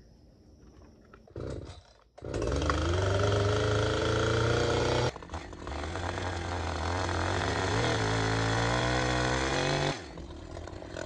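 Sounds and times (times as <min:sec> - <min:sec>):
chainsaw engine sputtering: 0:01.3 - 0:11.0.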